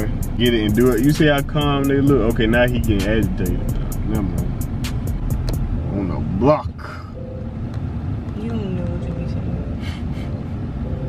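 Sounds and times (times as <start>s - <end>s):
music with ticking beat: 0.0s - 5.9s
road rumble inside car: 0.0s - 11.0s.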